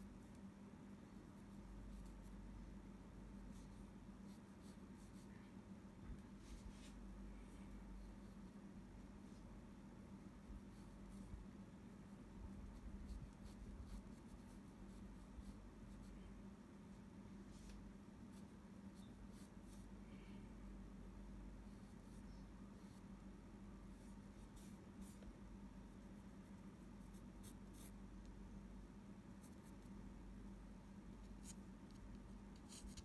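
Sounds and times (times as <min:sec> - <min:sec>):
low steady hum: 0:00.0 - 0:33.0
pencil scratching on paper: 0:01.4 - 0:02.4, 0:12.5 - 0:16.2, 0:23.9 - 0:25.3, 0:25.9 - 0:28.0, 0:31.2 - 0:33.0.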